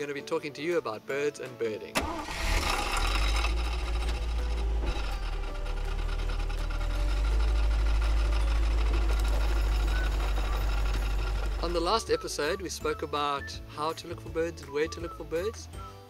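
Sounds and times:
faint light music: 0.0s - 16.0s
rapid mechanical rattle: 2.0s - 12.0s
vehicle engine running: 2.3s - 12.5s.

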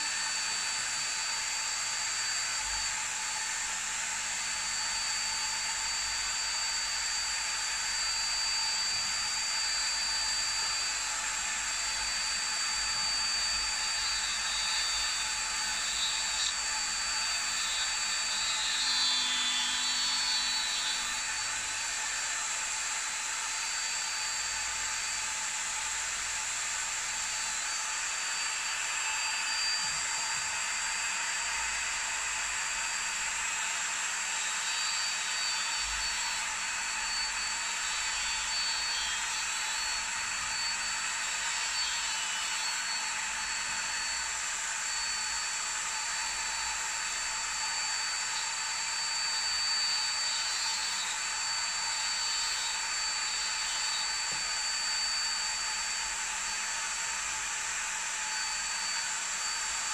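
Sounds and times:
rotary tool whining: 0.0s - 59.9s
grinding stone on metal nib: 12.0s - 21.6s, 34.3s - 44.4s, 49.1s - 54.5s.

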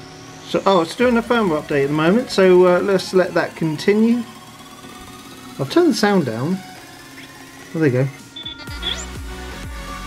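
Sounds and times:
electronic music through phone speaker: 0.0s - 10.0s
short high electronic chirps: 8.3s - 9.2s.

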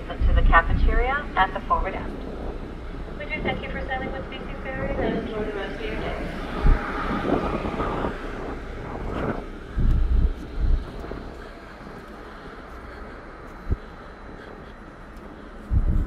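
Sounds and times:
people talking: 0.0s - 2.3s, 3.2s - 6.4s
ferry low rumble: 0.0s - 16.0s
wind buffeting microphone: 0.0s - 16.0s.

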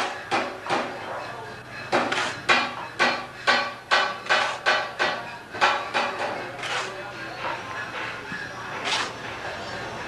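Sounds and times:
metal tool striking brick: 1.9s - 7.0s.

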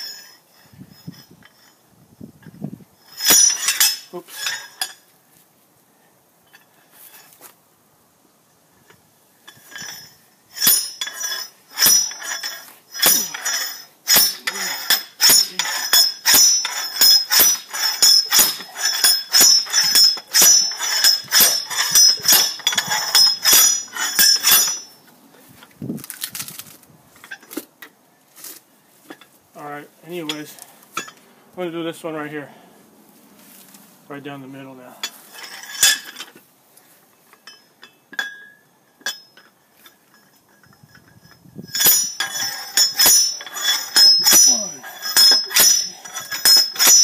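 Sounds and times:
metal-on-metal clanks: 2.4s - 5.1s, 8.8s - 25.7s, 27.2s - 27.9s, 30.1s - 31.3s, 34.9s - 36.4s, 37.3s - 47.0s.

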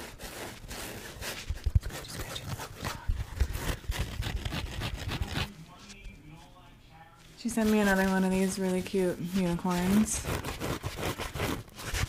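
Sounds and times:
sponge squeezed and rubbed: 0.0s - 5.5s, 7.5s - 12.0s.

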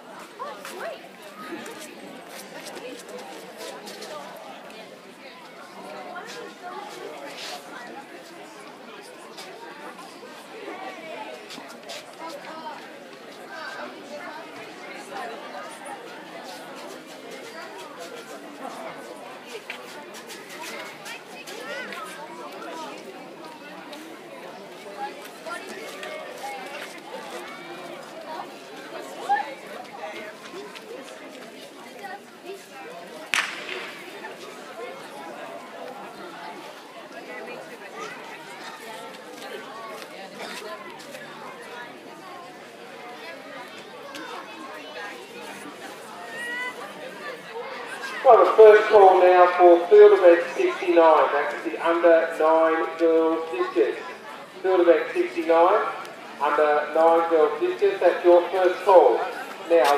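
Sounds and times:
indistinct chatter of people: 0.0s - 59.9s.

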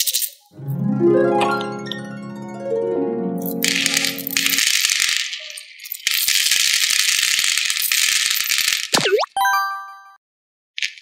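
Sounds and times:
beads pouring into plastic tray: 3.5s - 8.9s.

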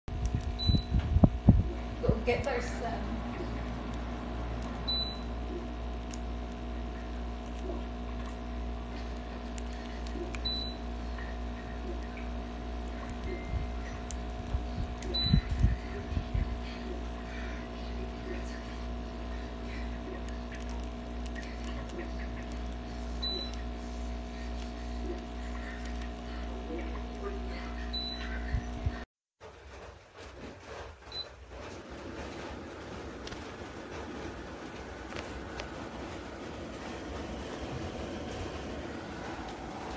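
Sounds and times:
air purifier fan humming: 0.1s - 29.0s, 29.8s - 39.9s.

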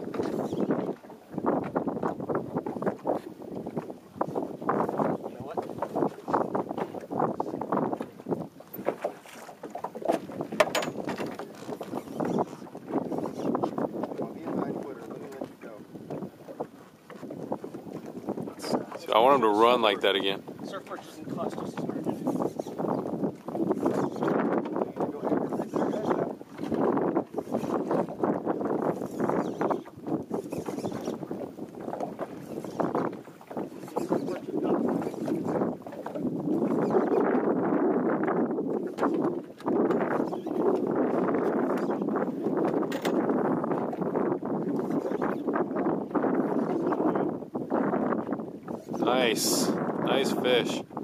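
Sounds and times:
choppy water around a boat: 0.0s - 51.0s
wind: 0.0s - 51.0s.

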